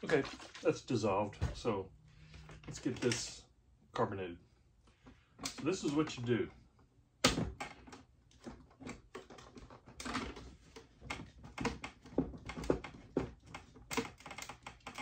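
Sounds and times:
plastic bottle clicks and knocks: 7.2s - 10.4s.

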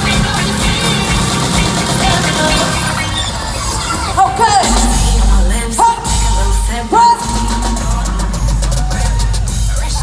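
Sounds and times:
live pop music: 0.0s - 10.0s.

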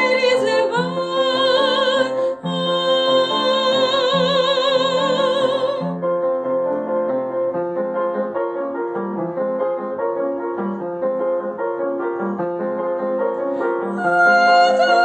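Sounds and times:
person singing: 0.0s - 6.0s, 13.6s - 15.0s
piano playing: 0.0s - 15.0s.

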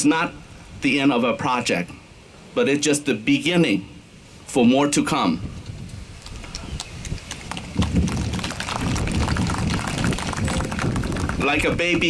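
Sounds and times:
wind buffeting microphone: 5.4s - 12.0s
scattered crackles: 6.2s - 12.0s.

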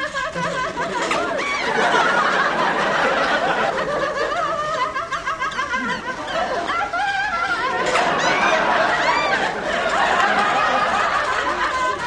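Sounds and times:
people giggling and laughing: 0.0s - 12.0s.

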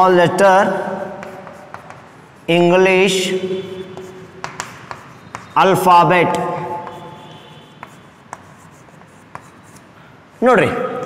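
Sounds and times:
chalk tapping: 1.0s - 10.5s
chalk scratching on blackboard: 1.0s - 10.6s.

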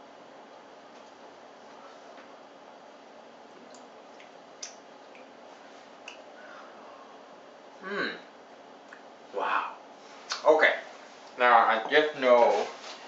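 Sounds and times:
steady room hiss: 0.0s - 13.0s
lip smacks and mouth clicks: 3.6s - 5.3s, 6.0s - 6.3s.

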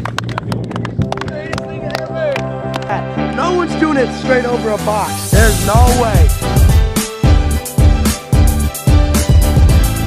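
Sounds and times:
small group clapping and cheering: 0.0s - 3.5s
background music with bass line: 0.0s - 10.0s.

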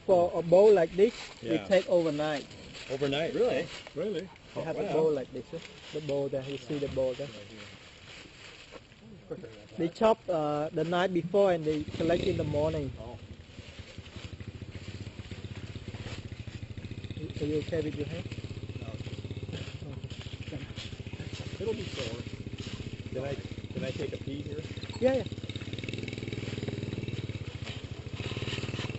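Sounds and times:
motorbike engine idling: 11.4s - 28.9s.

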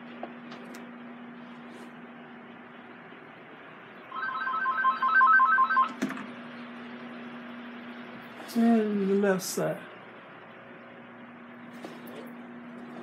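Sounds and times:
telephone ringing electronically: 4.1s - 6.0s.

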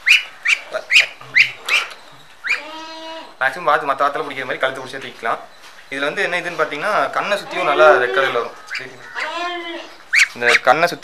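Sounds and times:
ducklings peeping: 0.0s - 3.4s, 4.0s - 10.8s.

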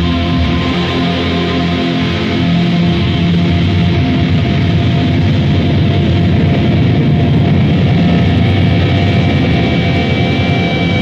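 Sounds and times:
distorted metal band playing: 0.0s - 11.0s.

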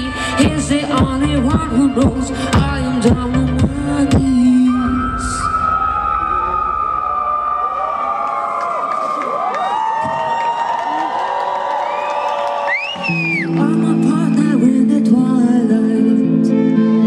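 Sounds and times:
song beat: 0.0s - 6.0s
audience cheering and whistling: 4.6s - 14.8s.

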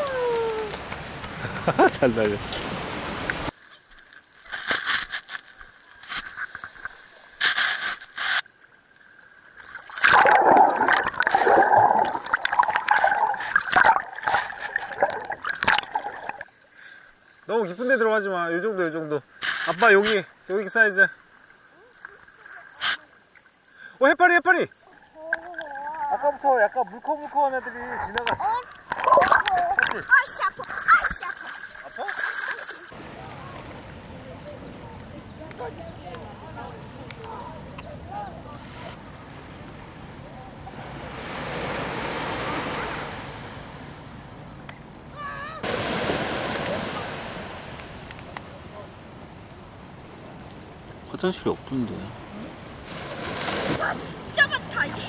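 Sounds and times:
seawater splashing: 0.0s - 44.3s, 45.2s - 55.0s
underwater bubbling: 5.6s - 17.2s, 27.7s - 34.0s.

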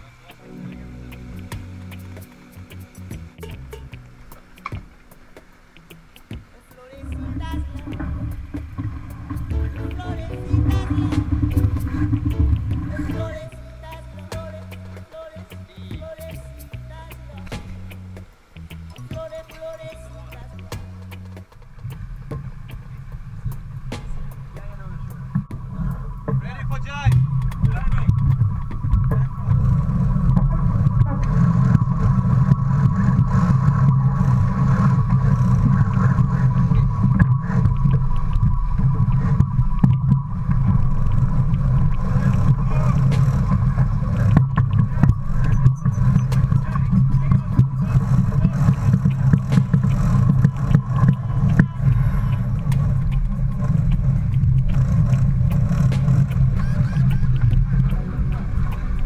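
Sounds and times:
faint steady hum: 0.0s - 59.0s
wind buffeting microphone: 0.0s - 59.0s
water rushing past hull: 3.6s - 56.6s.

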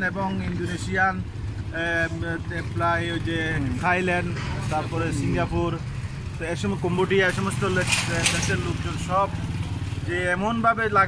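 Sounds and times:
man talking: 0.0s - 11.0s
street traffic rumble: 0.0s - 11.0s.

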